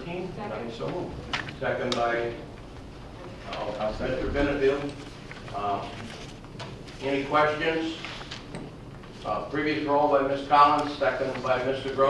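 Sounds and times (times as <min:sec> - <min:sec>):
low room noise: 0:00.0 - 0:12.0
man speaking into a microphone: 0:03.4 - 0:06.0.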